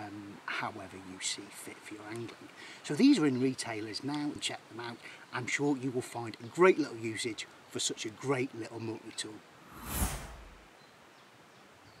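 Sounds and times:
whoosh with low rumble: 0:09.7 - 0:10.6.

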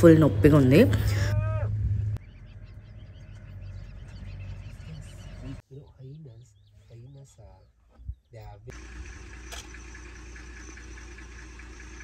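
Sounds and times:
vehicle engine idling: 0:00.0 - 0:07.4, 0:08.4 - 0:12.0
faint bird chirps: 0:02.2 - 0:08.7.

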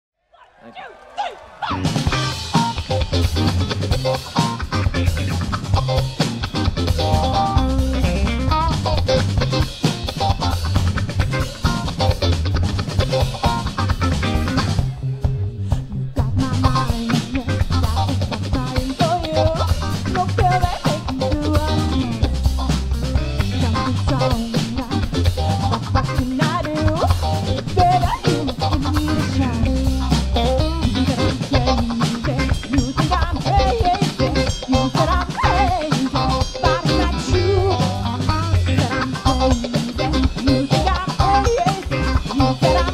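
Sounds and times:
drum kit beat: 0:01.7 - 0:42.9
electric guitar: 0:01.7 - 0:42.9.

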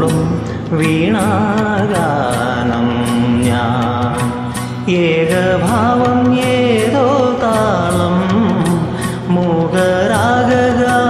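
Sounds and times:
steady percussion beat: 0:00.0 - 0:11.0.

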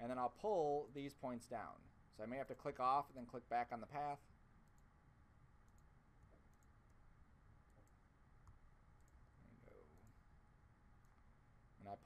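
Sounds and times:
faint computer mouse clicks: 0:05.6 - 0:07.0, 0:07.7 - 0:09.2.

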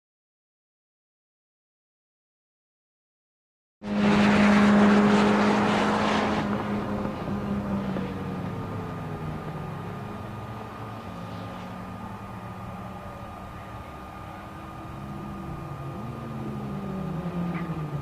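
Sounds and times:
car engine at high revs: 0:03.8 - 0:18.0.

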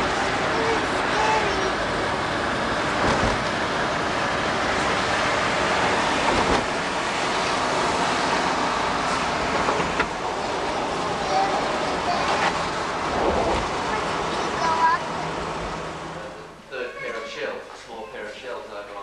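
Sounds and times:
surrounding traffic: 0:00.0 - 0:16.8.

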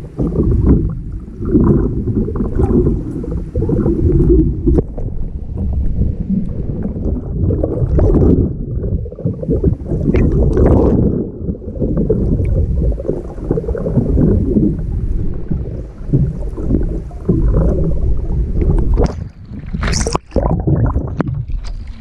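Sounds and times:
muffled underwater water gurgling: 0:00.0 - 0:22.0
water splash: 0:00.0 - 0:22.0.

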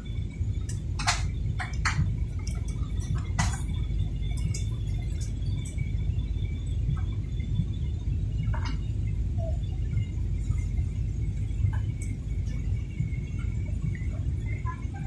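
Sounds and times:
airliner cabin rumble: 0:00.0 - 0:15.0.

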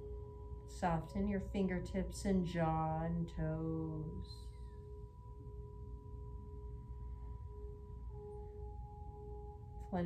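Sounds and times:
ambient music of sustained tones: 0:00.0 - 0:10.0
low hum: 0:00.0 - 0:10.0.

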